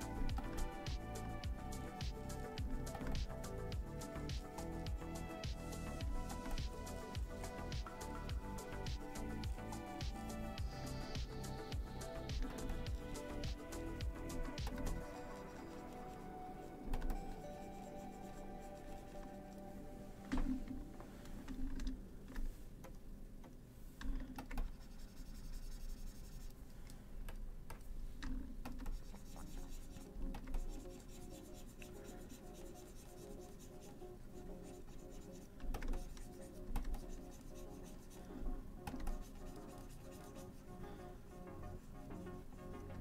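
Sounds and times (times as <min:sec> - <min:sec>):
stylus scratching on graphics tablet: 0:00.0 - 0:19.8, 0:24.6 - 0:26.6, 0:28.8 - 0:40.9
quiet background music: 0:00.0 - 0:43.0.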